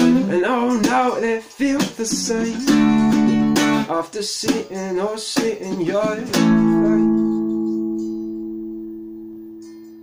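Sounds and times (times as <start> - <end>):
acoustic guitar chord ringing: 5.9 - 10.0.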